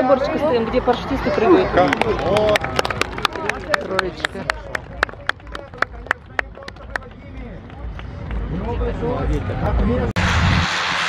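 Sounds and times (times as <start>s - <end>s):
spectators' voices: 0.0s - 10.1s.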